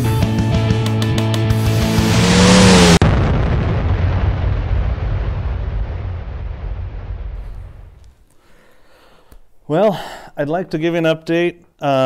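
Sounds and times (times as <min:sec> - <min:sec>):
rumbling boom crash: 0:01.5 - 0:08.2.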